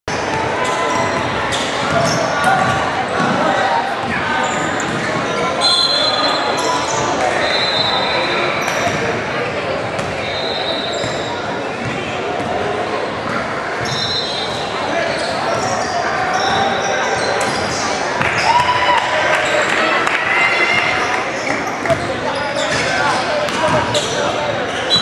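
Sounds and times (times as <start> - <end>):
spectators talking: 0.1 - 25.0
sneakers squeaking on wooden floor: 0.2 - 3.4, 4.1 - 18.4, 20.8 - 25.0
basketball bouncing: 10.0 - 10.2.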